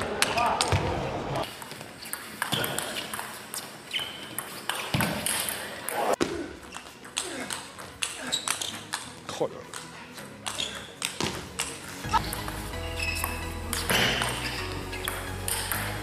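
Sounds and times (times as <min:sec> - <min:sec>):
table tennis ball hits: 0:01.5 - 0:05.6, 0:10.4 - 0:16.0.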